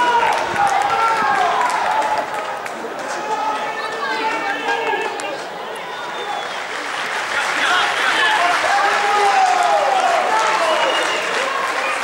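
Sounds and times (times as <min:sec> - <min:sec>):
men shouting and calling out: 0:07.4 - 0:11.0.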